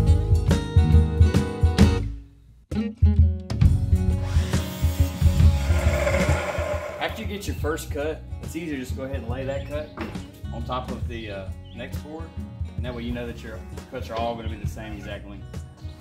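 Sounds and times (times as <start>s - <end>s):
miter saw cutting wood: 4.5s - 7.2s.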